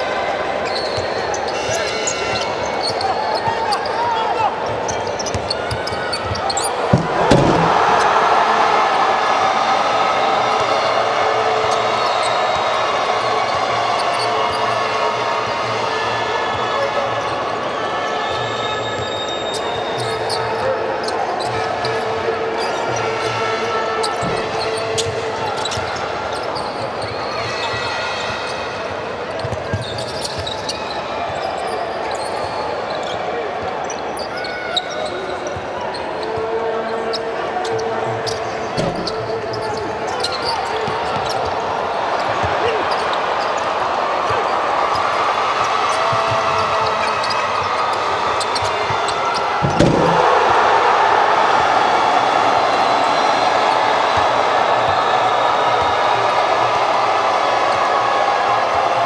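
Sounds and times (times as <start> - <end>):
crowd noise in a hall: 0.0 - 59.0.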